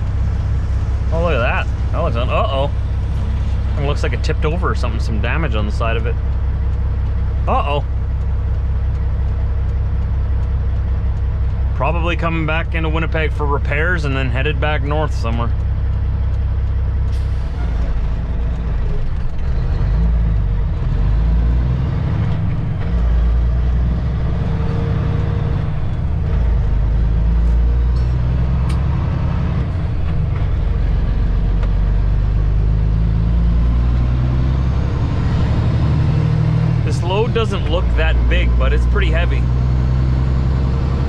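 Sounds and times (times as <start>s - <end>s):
truck diesel engine droning: 0.0s - 41.0s.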